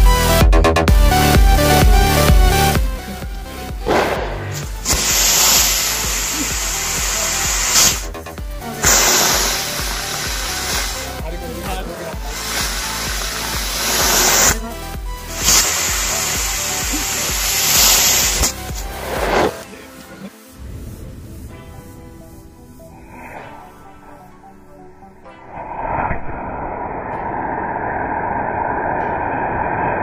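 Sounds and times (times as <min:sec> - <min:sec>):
electronic background music: 0:00.0 - 0:30.0
firework rocket hissing: 0:03.1 - 0:19.8, 0:20.5 - 0:26.3.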